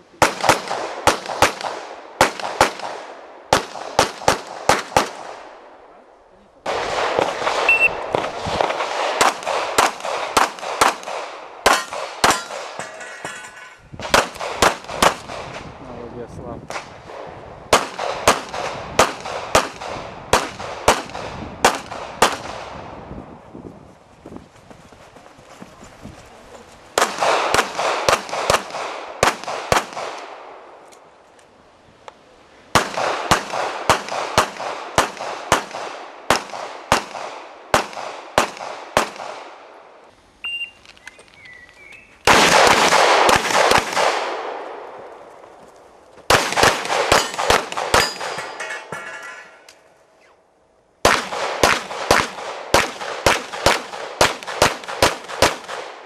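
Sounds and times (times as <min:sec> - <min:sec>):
handgun shots: 0:09.0 - 0:12.8, 0:46.3 - 0:48.9.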